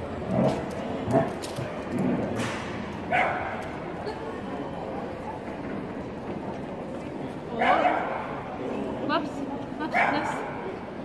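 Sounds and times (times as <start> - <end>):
dog barking: 3.1 - 3.5, 7.6 - 8.2, 9.9 - 10.4.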